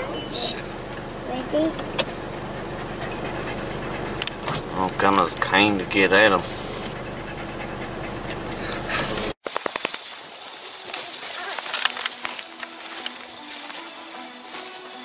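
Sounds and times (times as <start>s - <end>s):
vehicle rumbling from inside cab: 0.0s - 9.4s
rustle of movement through grass: 9.4s - 15.0s.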